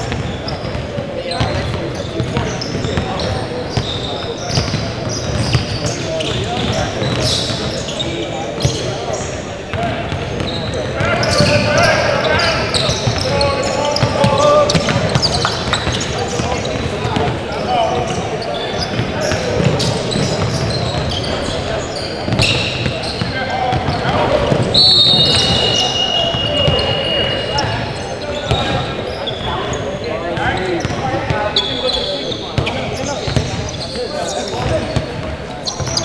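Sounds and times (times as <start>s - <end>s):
sneakers squeaking: 0.0s - 36.0s
referee's whistle: 22.0s - 23.4s, 24.6s - 29.7s
people calling out: 23.9s - 29.5s.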